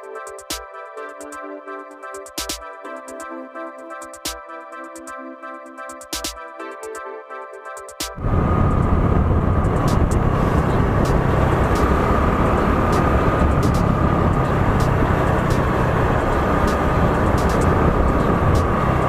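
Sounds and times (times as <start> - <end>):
motorcycle engine: 8.2 - 19.0
wind and road rumble: 8.2 - 19.0.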